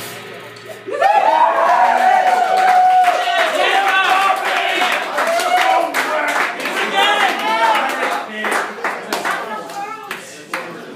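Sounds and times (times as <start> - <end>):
voices calling out and cheering: 0.7 - 10.9
audience applauding: 1.2 - 10.9.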